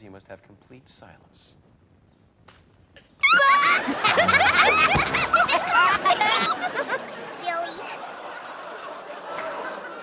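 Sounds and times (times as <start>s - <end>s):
crowd laughing: 3.2s - 10.0s.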